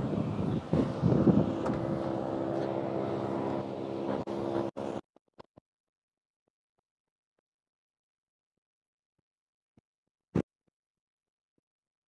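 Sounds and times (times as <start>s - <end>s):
traffic noise: 0.0s - 5.0s
vehicle engine hum: 0.0s - 5.0s.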